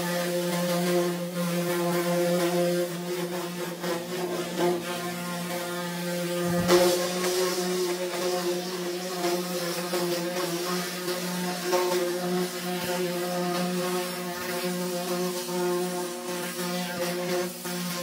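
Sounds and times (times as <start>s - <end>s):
pressure washer droning: 0.0s - 18.0s
water jet hissing: 0.0s - 18.0s.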